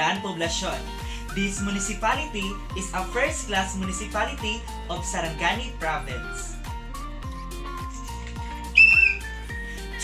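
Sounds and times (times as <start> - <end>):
music with steady beat: 0.5 - 10.0
whistle blast: 8.8 - 9.4.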